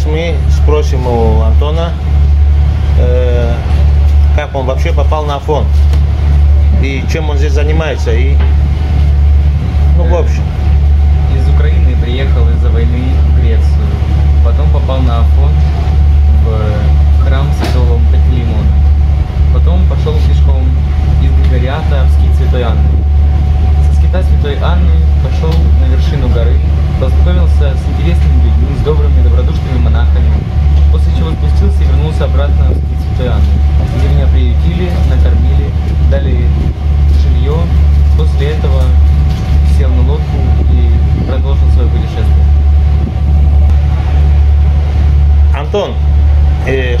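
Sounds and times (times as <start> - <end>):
man talking: 0.0 - 2.0, 3.0 - 5.8, 6.6 - 8.5, 9.9 - 10.5, 11.2 - 15.7, 16.4 - 18.8, 19.5 - 23.0, 23.8 - 39.0, 39.6 - 42.5, 45.5 - 46.0, 46.6 - 47.0
boat engines droning: 0.0 - 47.0
faint steady whine: 0.0 - 47.0.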